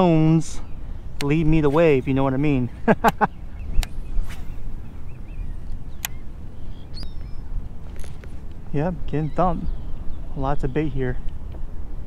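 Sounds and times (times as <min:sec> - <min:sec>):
faint bird calls: 0:00.0 - 0:12.0
wind rumble on microphone: 0:00.0 - 0:12.0
sharp click: 0:03.0 - 0:04.4, 0:05.7 - 0:06.2.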